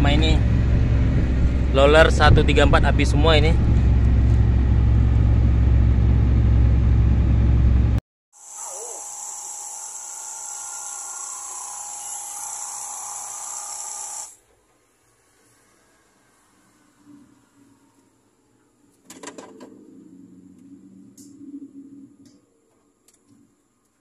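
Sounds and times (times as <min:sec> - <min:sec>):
diesel engine deep rumble: 0:00.0 - 0:08.0.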